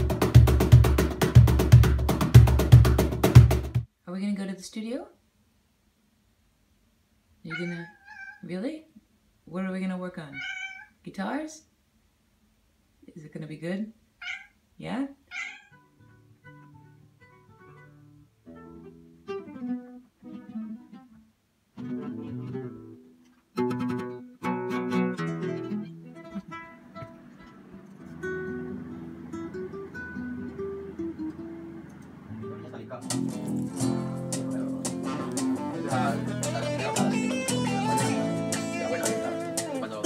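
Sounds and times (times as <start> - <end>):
guitar plucking and strumming: 0.0 - 3.9, 15.7 - 40.0
cat meowing: 7.5 - 8.5, 10.3 - 11.0, 14.2 - 14.6, 15.3 - 15.9.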